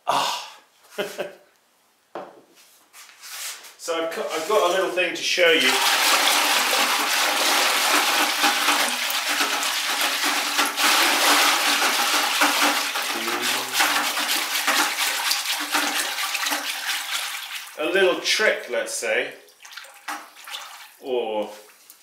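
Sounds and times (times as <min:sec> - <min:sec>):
liquid glaze sloshing in bucket: 0:05.6 - 0:17.9, 0:19.5 - 0:22.0.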